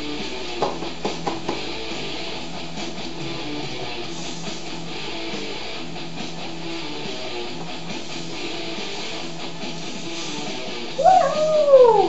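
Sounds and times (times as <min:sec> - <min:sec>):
guitar music: 0:01.6 - 0:12.0
loud howling cry: 0:10.9 - 0:12.0.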